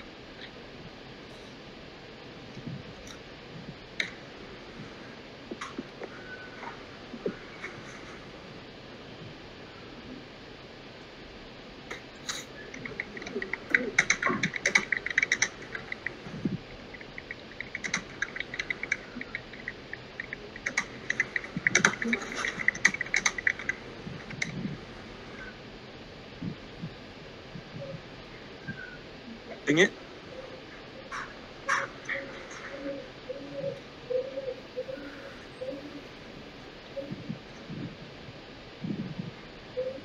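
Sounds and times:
bird cooing: 0:02.6 - 0:10.3, 0:11.9 - 0:40.0
harsh bird calls: 0:04.0 - 0:08.4, 0:11.9 - 0:25.7, 0:27.6 - 0:38.0
keyboard typing clicks: 0:11.9 - 0:16.1, 0:16.7 - 0:24.6.

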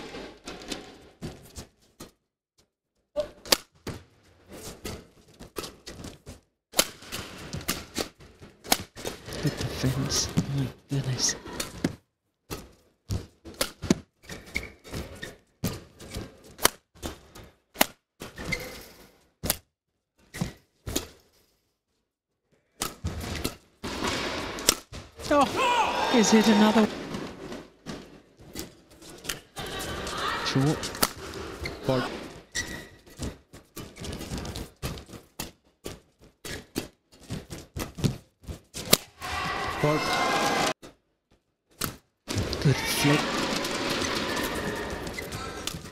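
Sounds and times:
rackets hitting shuttlecock: 0:22.8 - 0:25.6, 0:30.8 - 0:31.4, 0:38.8 - 0:39.2.

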